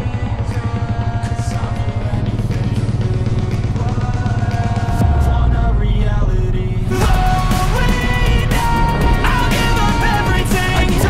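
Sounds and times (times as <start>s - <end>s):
background music: 0.0s - 11.0s
quad bike engine running: 0.0s - 11.0s.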